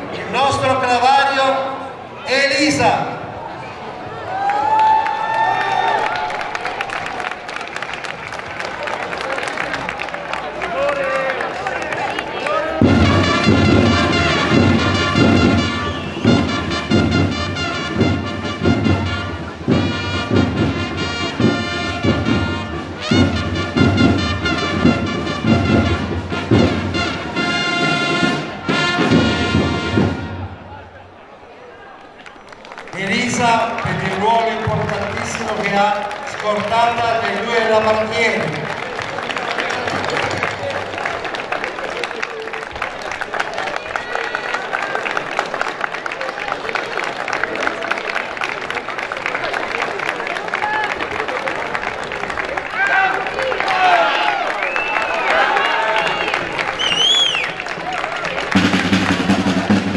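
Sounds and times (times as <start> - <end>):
herald trumpets: 12.4 - 30.7
drum beats: 12.7 - 30.6, 56.0 - 59.9.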